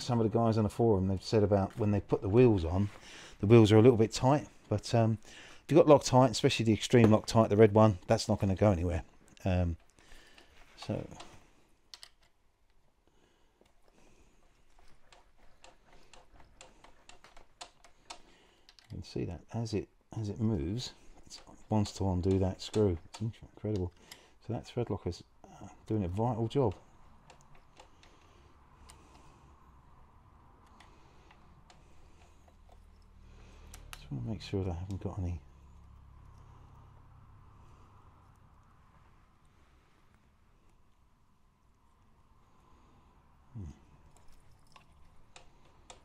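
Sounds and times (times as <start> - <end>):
metal parts clicking and tapping: 9.3 - 12.9, 13.6 - 19.2, 20.8 - 24.4, 25.9 - 29.3, 30.6 - 36.9, 44.0 - 46.0.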